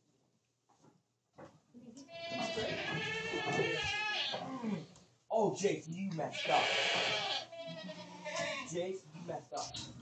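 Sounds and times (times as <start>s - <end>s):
goat bleating: 2.0s - 4.9s, 6.3s - 9.8s.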